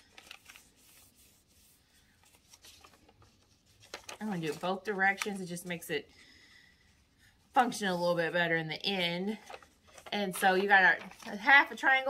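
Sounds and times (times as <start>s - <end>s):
paper rustling and crinkling: 0.0s - 5.6s, 9.3s - 12.0s.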